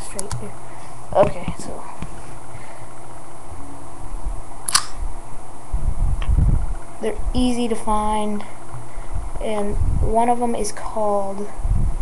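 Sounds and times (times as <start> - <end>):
sharp click: 4.7 - 5.0
heavy low thuds: 5.7 - 7.4.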